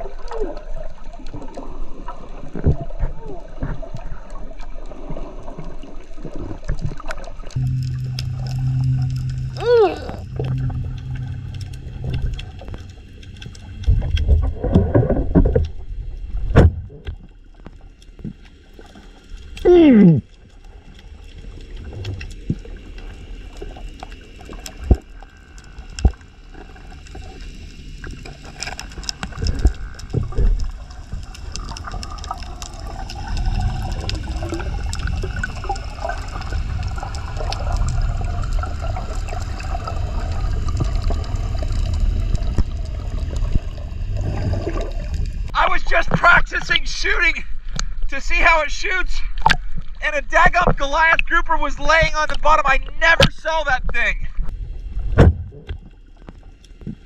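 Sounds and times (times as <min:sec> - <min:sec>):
underwater rushing water: 0:00.0 - 0:50.8
wavering hum with low rumble: 0:07.5 - 0:45.6
loud falling tone: 0:07.6 - 0:12.9.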